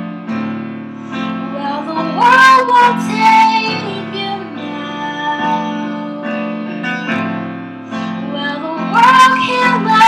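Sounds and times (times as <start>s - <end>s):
grand piano chords: 0.0s - 10.0s
young woman singing: 1.4s - 6.9s, 8.2s - 10.0s.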